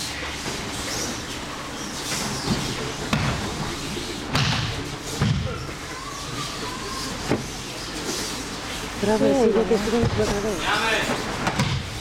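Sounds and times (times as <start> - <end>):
steady hall noise: 0.0 - 12.0.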